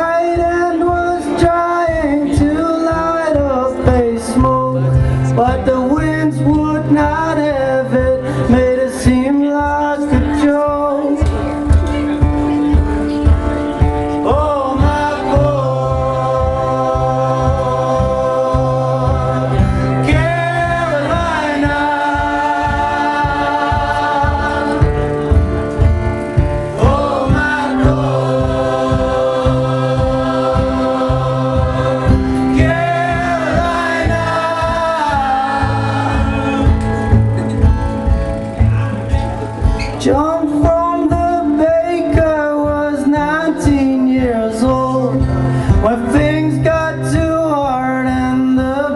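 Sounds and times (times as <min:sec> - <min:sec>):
low beat: 0:00.0 - 0:48.9
strummed acoustic guitar: 0:00.0 - 0:48.9
group of voices singing: 0:14.1 - 0:37.6.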